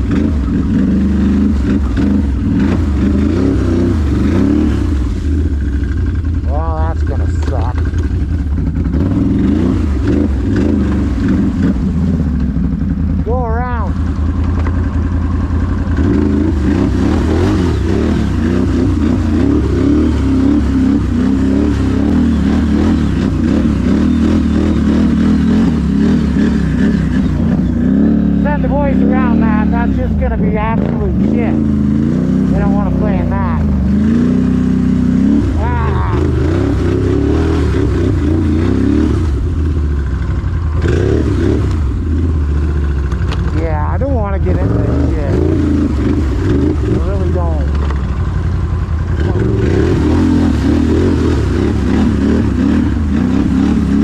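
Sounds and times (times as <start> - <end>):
atv engine revving: 0.0 - 54.0.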